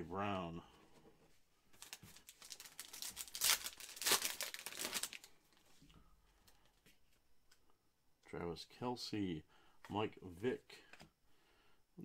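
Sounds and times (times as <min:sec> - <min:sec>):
foil wrapper tearing and crinkling: 0:01.8 - 0:05.3.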